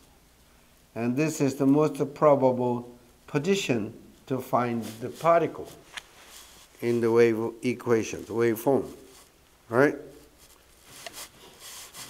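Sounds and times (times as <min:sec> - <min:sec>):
footsteps shuffling and scuffing: 0:04.6 - 0:07.1.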